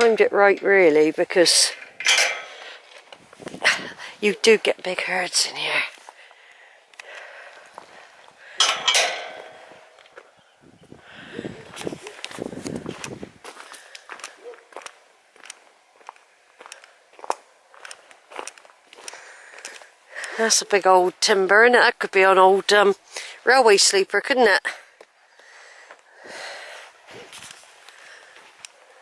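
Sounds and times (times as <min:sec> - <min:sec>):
footsteps on gravel: 0:02.4 - 0:06.4, 0:07.1 - 0:08.4, 0:11.7 - 0:21.2.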